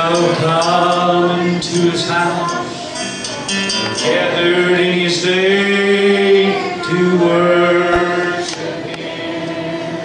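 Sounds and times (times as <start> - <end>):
man leading song: 0.0 - 2.9, 3.7 - 10.0
congregation singing gospel chorus: 0.0 - 10.0.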